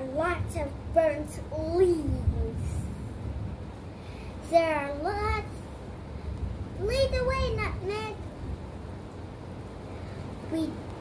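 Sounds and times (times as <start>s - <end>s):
child speaking: 0.0s - 3.0s, 4.4s - 5.6s, 6.8s - 8.3s, 10.4s - 10.9s
faint hiss: 0.0s - 11.0s
low background rumble: 0.0s - 11.0s.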